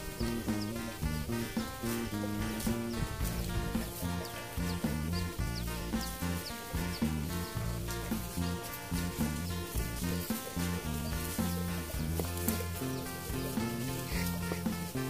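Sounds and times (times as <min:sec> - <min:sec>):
background music with beat and bass: 0:00.0 - 0:15.0.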